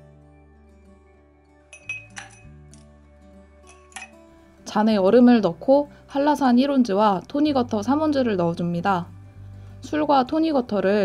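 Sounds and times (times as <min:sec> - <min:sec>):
background music: 0:00.0 - 0:11.0
ice cubes clinking in glass: 0:01.8 - 0:02.5, 0:03.7 - 0:04.2.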